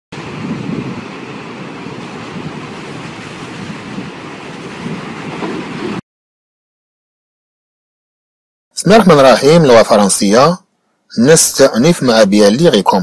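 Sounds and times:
rushing wind-like noise: 0:00.1 - 0:06.0.

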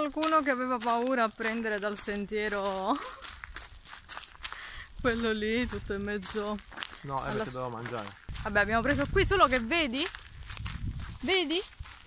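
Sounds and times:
footsteps on gravel: 0:00.0 - 0:12.0
low wind rumble on microphone: 0:08.2 - 0:12.0.

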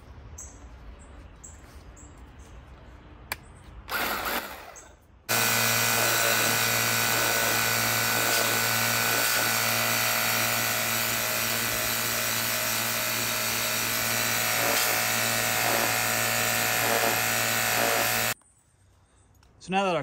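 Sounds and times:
pressure washer motor humming: 0:05.3 - 0:18.4.

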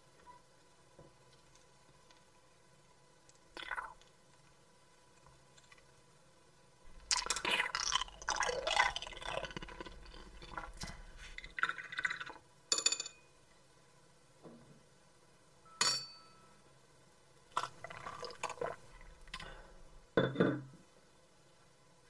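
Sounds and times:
wet mouth sounds of eating: 0:07.0 - 0:12.4
mouth sounds of drinking: 0:07.1 - 0:12.2
wine glass clinking: 0:15.7 - 0:16.5.

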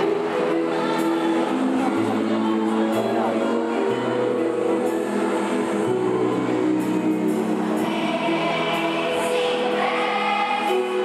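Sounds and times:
children's choir singing: 0:00.0 - 0:03.4, 0:04.5 - 0:11.0.

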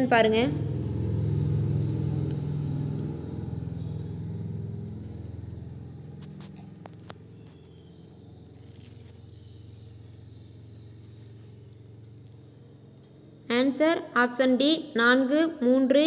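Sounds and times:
low rumble: 0:00.0 - 0:07.5.

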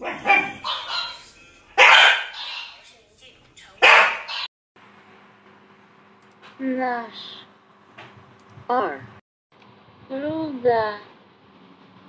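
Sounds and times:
dog barking: 0:00.0 - 0:02.8, 0:03.8 - 0:04.5.

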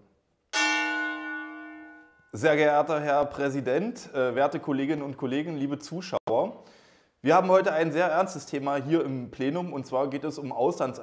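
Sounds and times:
gong struck: 0:00.6 - 0:02.1.

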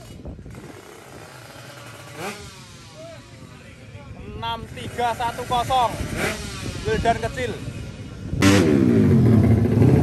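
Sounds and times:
motorcycle engine revving: 0:00.0 - 0:03.4, 0:04.6 - 0:10.0.

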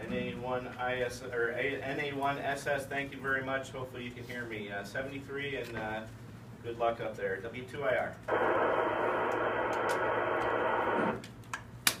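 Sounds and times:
radio static hiss: 0:08.3 - 0:11.2
loud sharp clap: 0:11.5 - 0:12.0.

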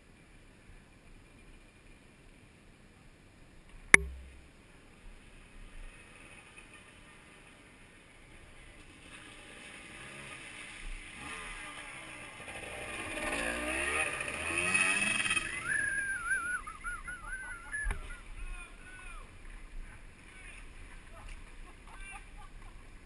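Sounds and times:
motorcycle engines revving: 0:05.9 - 0:15.8
wavering high-pitched cry: 0:15.6 - 0:18.3.

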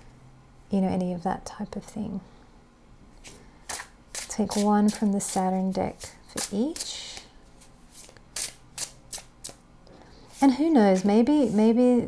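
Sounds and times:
cards rubbing and slipping: 0:03.7 - 0:05.5, 0:06.4 - 0:09.6.

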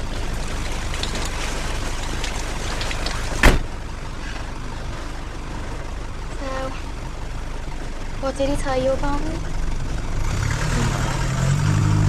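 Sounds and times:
car engine running: 0:00.0 - 0:12.0
car door slamming: 0:03.4 - 0:03.7.

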